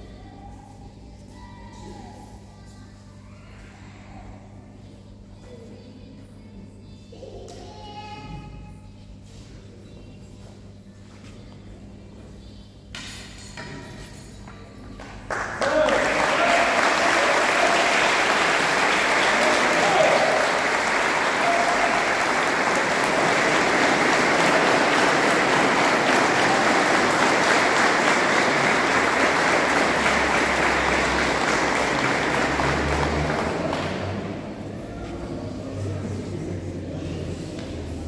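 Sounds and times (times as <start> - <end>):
crowd applauding: 15.3 - 34.7.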